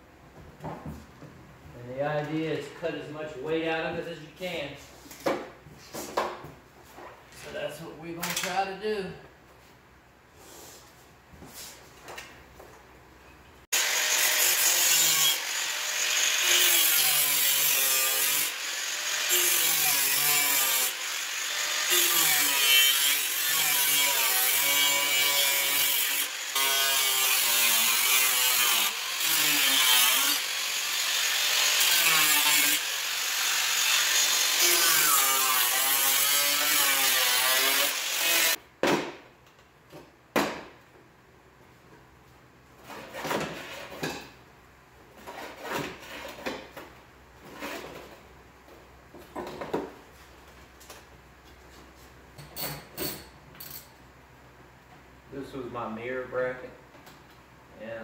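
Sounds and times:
angle grinder cutting steel: 13.7 - 38.6.

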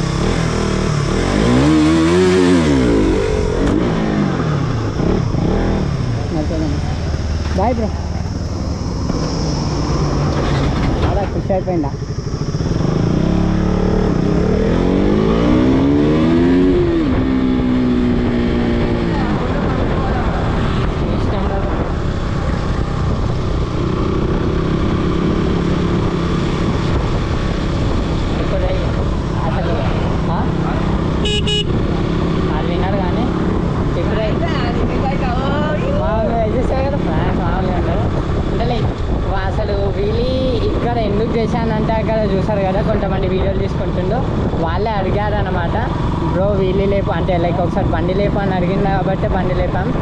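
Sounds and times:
motorcycle engine revving: 0.0 - 50.0
wind rush: 1.2 - 50.0.

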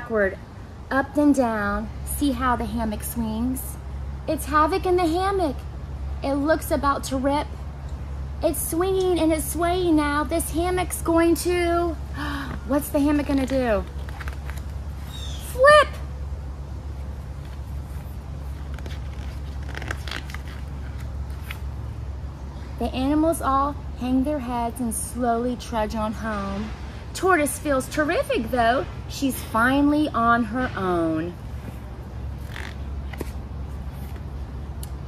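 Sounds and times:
low background rumble: 0.0 - 35.0
book pages turning: 13.3 - 14.8, 17.4 - 21.7, 32.4 - 34.3
paper rustling: 13.3 - 14.8, 17.4 - 21.6.

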